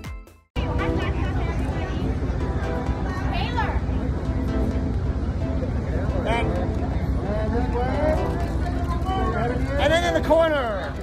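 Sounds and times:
crowd rumble: 0.6 - 11.0.

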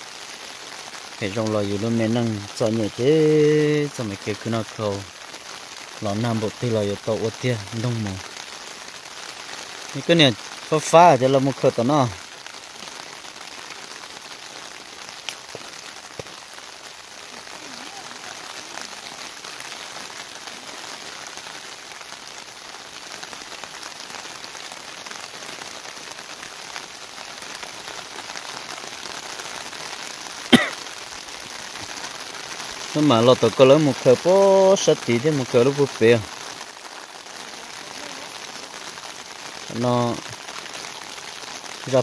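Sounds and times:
rain on water and leaves: 0.0 - 42.0.

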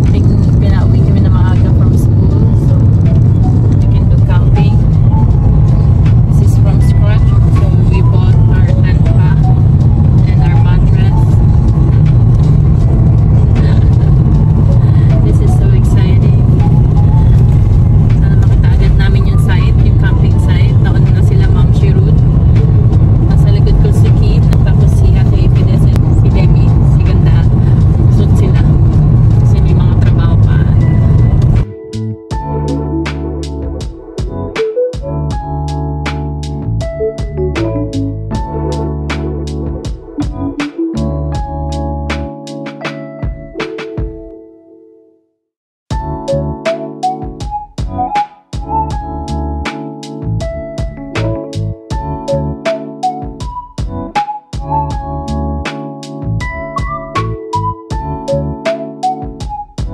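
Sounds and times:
car cabin road and engine rumble: 0.0 - 31.6.

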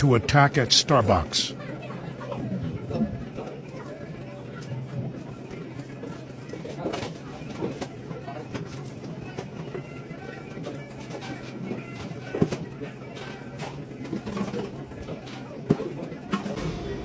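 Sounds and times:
indistinct voices: 0.0 - 4.5, 16.4 - 17.0
quiet background music: 0.0 - 17.0.

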